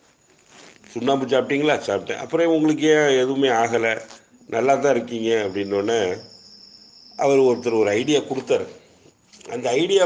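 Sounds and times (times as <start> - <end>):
man speaking: 0.9 - 6.3, 7.2 - 8.8, 9.4 - 10.0
thin high-pitched tone: 4.4 - 8.6.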